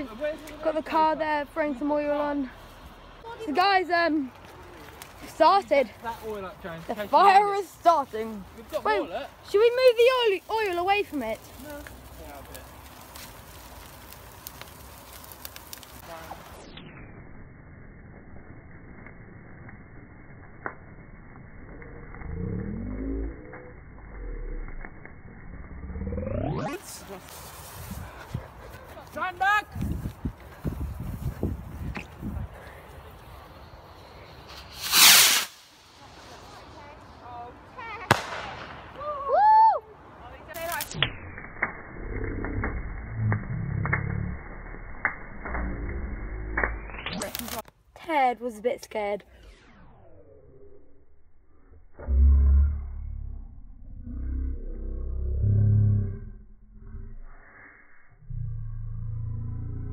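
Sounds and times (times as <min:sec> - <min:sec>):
slowed bonfire crackle pops: 0:00.0 - 0:57.7, 0:58.3 - 0:59.9
low rumble: 0:11.4 - 0:28.9, 0:40.0 - 0:47.2, 0:49.4 - 0:59.9
firework bang: 0:34.5 - 0:36.1, 0:38.0 - 0:39.2
low wavering tones: 0:49.5 - 0:59.9.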